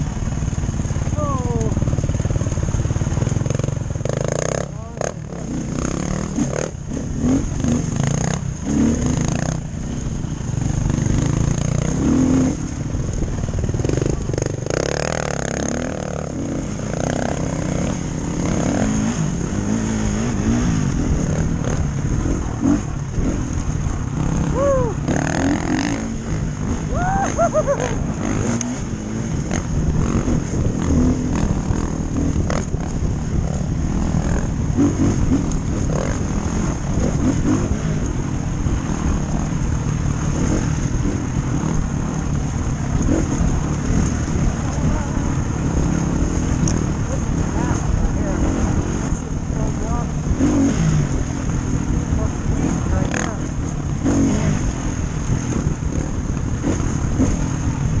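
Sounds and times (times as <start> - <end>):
dirt bike engine revving: 0.0 - 58.0
wind rushing over microphone: 0.0 - 58.0.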